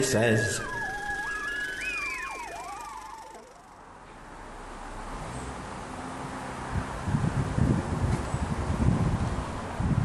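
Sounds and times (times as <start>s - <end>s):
swooping siren-like sliding tones: 0.0s - 3.9s.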